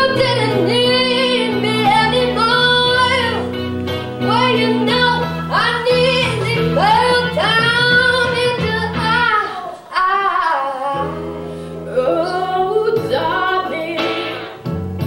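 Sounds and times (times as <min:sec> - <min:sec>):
girls singing a duet: 0:00.0 - 0:03.6, 0:04.2 - 0:14.6
instrumental accompaniment: 0:00.0 - 0:09.9, 0:10.9 - 0:15.0.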